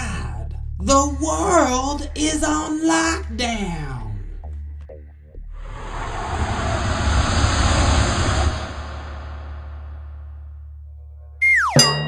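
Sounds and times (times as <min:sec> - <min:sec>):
loud rushing rumble: 0:05.6 - 0:10.5.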